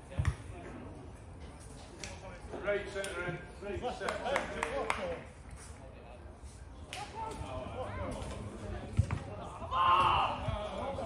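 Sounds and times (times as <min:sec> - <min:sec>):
loud shout: 0:09.6 - 0:10.7.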